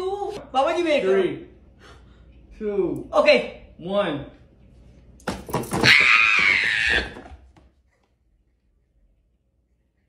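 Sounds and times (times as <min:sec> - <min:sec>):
woman screaming: 0:05.8 - 0:07.2.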